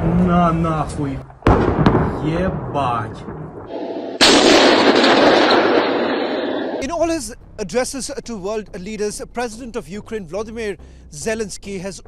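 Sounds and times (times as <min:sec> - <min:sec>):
loud explosion blast: 0:01.3 - 0:06.9.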